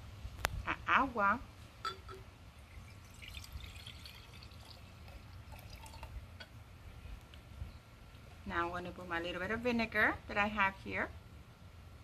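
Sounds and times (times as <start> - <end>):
water pouring into a vase: 2.6 - 6.3.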